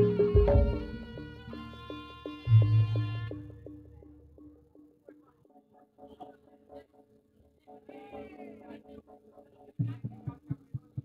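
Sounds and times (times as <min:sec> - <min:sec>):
gamelan music: 0:00.0 - 0:05.3.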